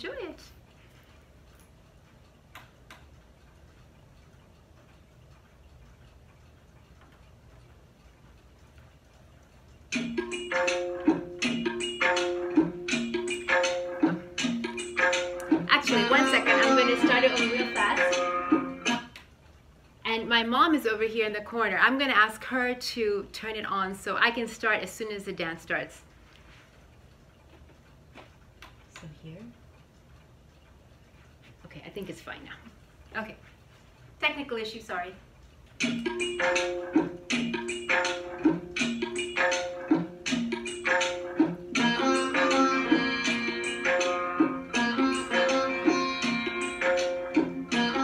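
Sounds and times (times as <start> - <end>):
small clicks: 0.7 - 10.1.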